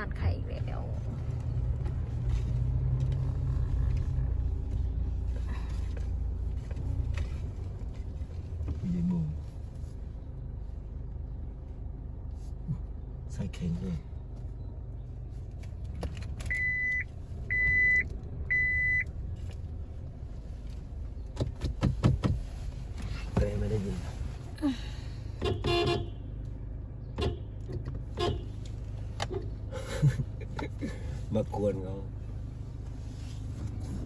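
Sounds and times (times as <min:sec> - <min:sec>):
low engine hum: 0:00.0 - 0:34.0
vehicle rumble inside car: 0:00.0 - 0:34.0
car warning beeper: 0:16.5 - 0:19.1.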